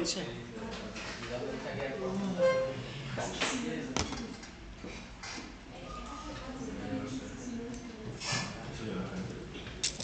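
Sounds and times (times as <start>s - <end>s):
murmur of voices: 0.0s - 4.7s, 5.5s - 10.0s.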